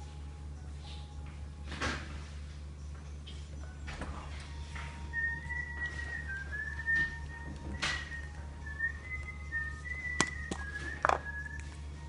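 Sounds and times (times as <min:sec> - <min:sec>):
high whistling tone: 0:05.0 - 0:12.0.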